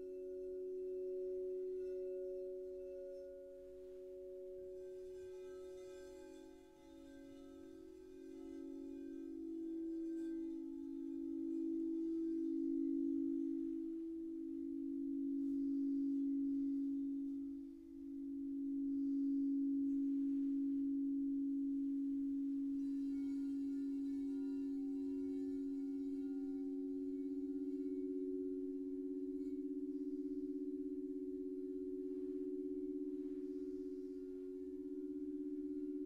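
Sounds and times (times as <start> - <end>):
crystal singing bowls ringing: 0.0 - 36.0
higher singing bowl tone: 0.0 - 36.0.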